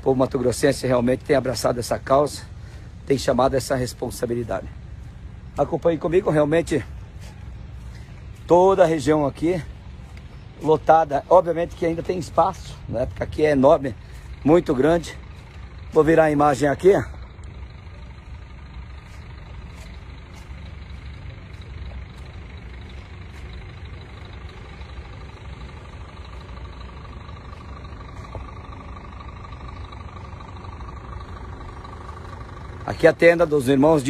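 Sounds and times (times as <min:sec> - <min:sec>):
faint steady whine: 0:00.0 - 0:34.0
low outdoor rumble: 0:00.0 - 0:34.0.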